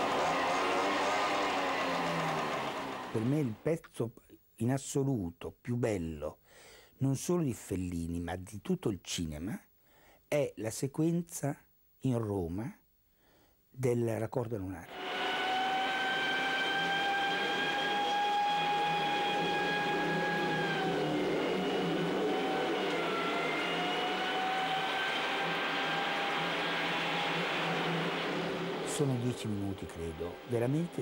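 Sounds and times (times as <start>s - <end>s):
traffic din: 0.0s - 3.6s, 14.9s - 31.0s
long held tone: 14.9s - 29.2s.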